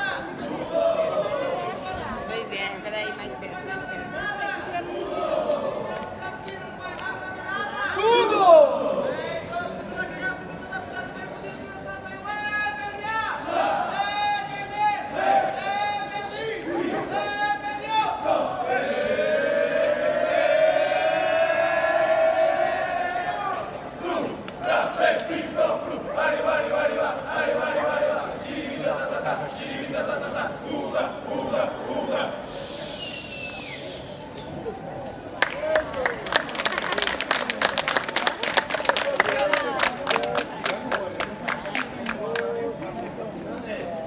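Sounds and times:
people calling and talking: 0.0 - 44.0
street crowd: 0.0 - 44.0
voices chanting a long note: 18.0 - 33.8
crowd applause: 35.3 - 42.5.

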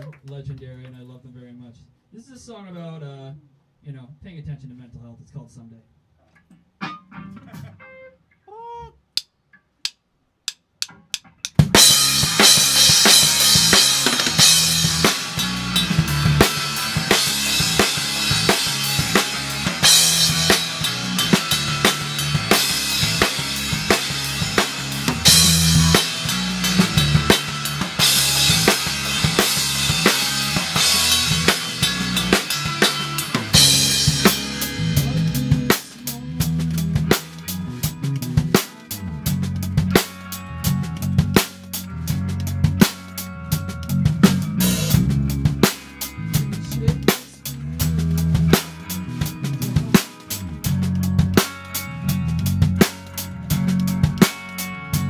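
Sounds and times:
rock band playing: 6.8 - 8.2, 10.8 - 55.0
sharp clicks: 9.1 - 11.7
drum kit: 9.2 - 55.0.

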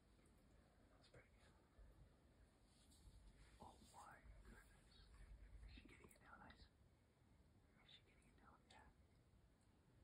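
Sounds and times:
faint whispering: 0.3 - 6.8, 7.6 - 9.1.

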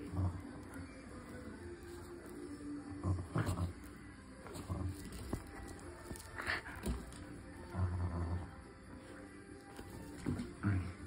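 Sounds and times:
dog growling: 2.9 - 5.3, 7.6 - 8.8.

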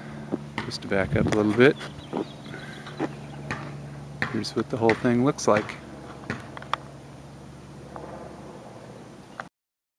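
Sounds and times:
low background hum with hiss: 0.0 - 9.5.

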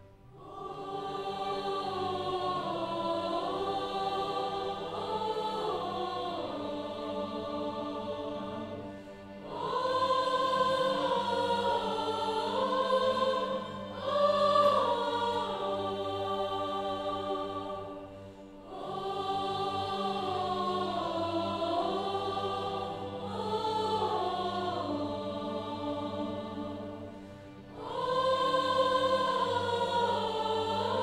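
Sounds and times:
mixed choir singing: 0.0 - 31.0
string orchestra: 0.0 - 31.0.

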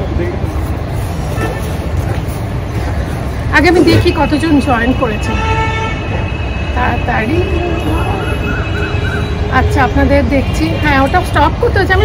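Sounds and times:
low rumble of street traffic: 0.0 - 12.0
vehicle horn: 3.8 - 9.0.

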